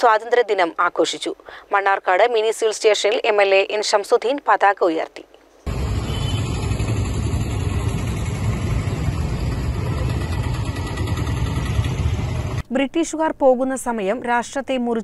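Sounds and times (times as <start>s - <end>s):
roadside background rumble: 5.7s - 12.6s.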